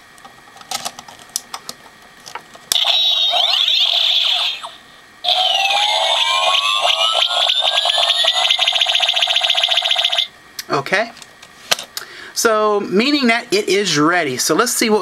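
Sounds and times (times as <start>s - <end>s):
electronic toy sound effect: 2.7s - 10.3s
rising pulsing electronic whine: 2.8s - 10.3s.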